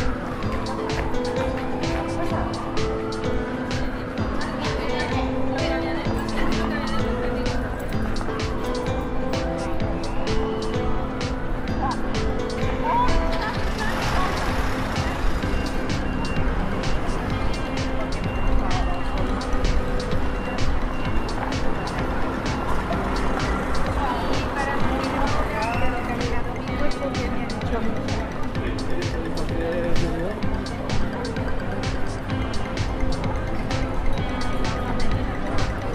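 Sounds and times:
music with steady melody: 0.0 - 35.9
people talking: 0.0 - 35.9.

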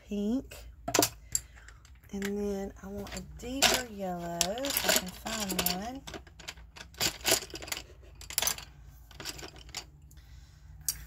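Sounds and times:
wooden pencils clicking together: 3.0 - 9.9.

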